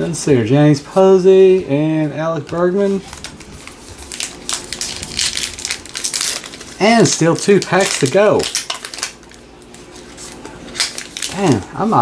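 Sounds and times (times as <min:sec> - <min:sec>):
plastic wrapper crinkling: 0:02.5 - 0:12.0.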